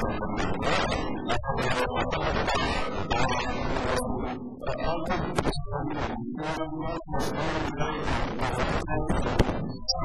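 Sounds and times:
person talking through a microphone: 0:00.0 - 0:10.0.

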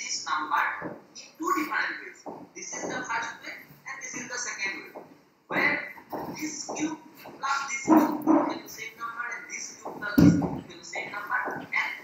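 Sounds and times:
person speaking over video call: 0:00.0 - 0:12.0.

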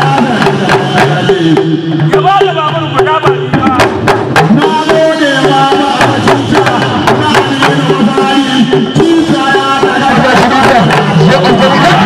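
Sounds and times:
talking drums pitch bending: 0:00.0 - 0:12.0.

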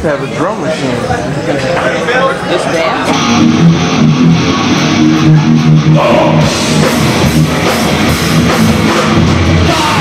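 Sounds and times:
electric guitar riff: 0:03.1 - 0:10.0.

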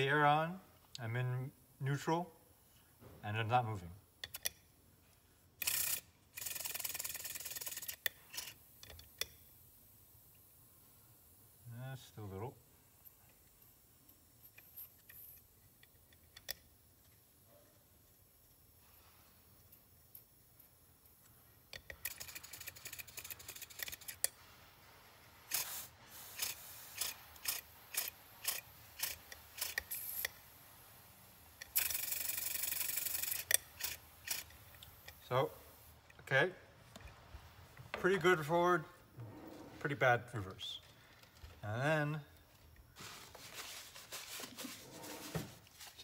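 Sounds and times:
steady hiss of air: 0:06.7 - 0:16.1, 0:18.2 - 0:46.0.

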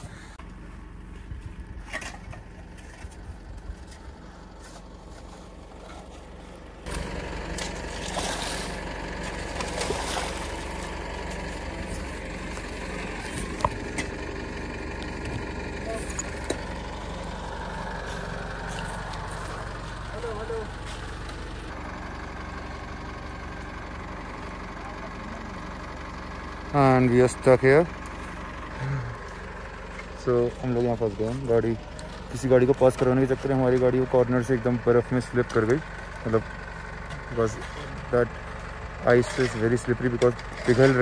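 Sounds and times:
low hum: 0:00.0 - 0:41.0
truck engine idling: 0:00.0 - 0:41.0.

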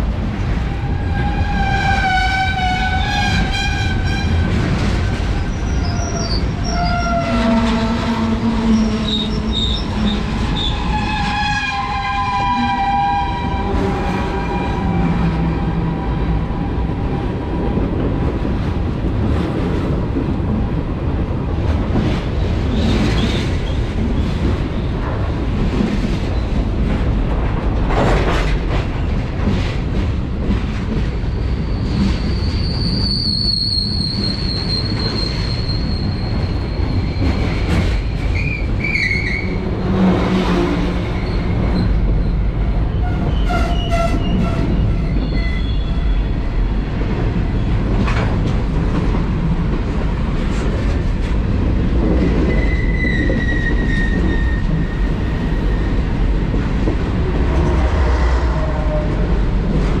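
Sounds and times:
freight train rumbling and clattering: 0:00.0 - 1:00.0
steel wheels squealing: 0:08.7 - 0:13.4, 0:31.4 - 0:39.8, 0:41.0 - 0:46.3, 0:52.5 - 0:55.9.

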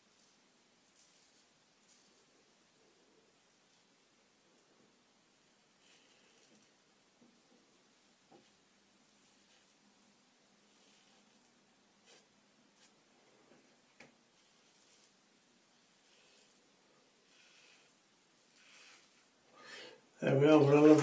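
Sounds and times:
razor scraping stubble: 0:00.1 - 0:02.3, 0:14.3 - 0:15.2, 0:15.8 - 0:19.3.

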